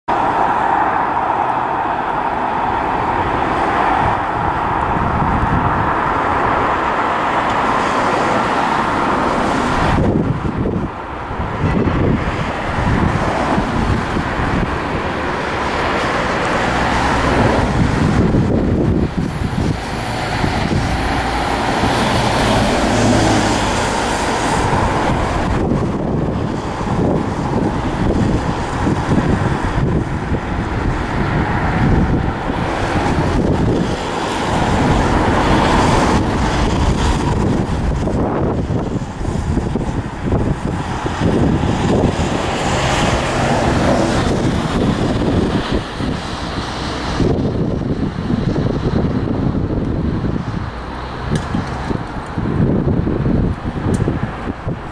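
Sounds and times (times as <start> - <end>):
road traffic noise: 0.0 - 54.9
diesel locomotive engine: 0.1 - 54.9
wind buffeting microphone: 0.1 - 54.9.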